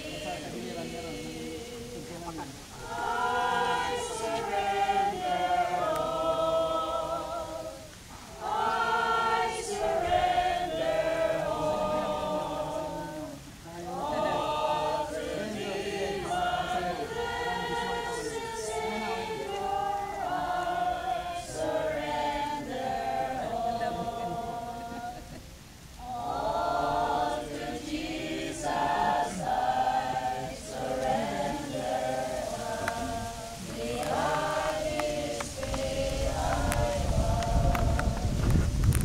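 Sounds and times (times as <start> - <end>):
congregation singing a hymn: 0.0 - 39.0.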